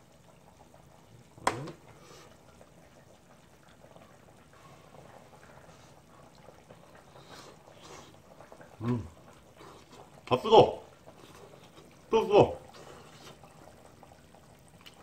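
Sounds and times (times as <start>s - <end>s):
faint chewing sounds: 1.9s - 10.3s, 11.0s - 12.1s, 12.7s - 15.0s
person humming: 8.8s - 9.1s.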